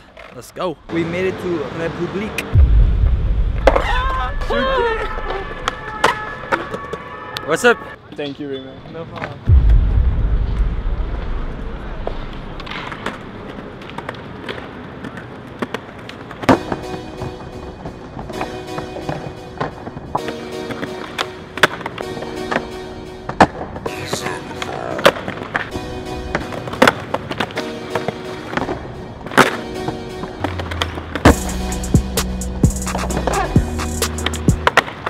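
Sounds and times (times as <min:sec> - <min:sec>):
skateboards rolling on stone: 0:12.1 - 0:22.7, 0:23.3 - 0:31.3, 0:34.2 - 0:35.0
skateboard clacks: 0:12.6 - 0:17.4, 0:18.2 - 0:22.7, 0:26.3 - 0:31.3, 0:32.8 - 0:35.0
background music sustained tones: 0:16.5 - 0:34.7.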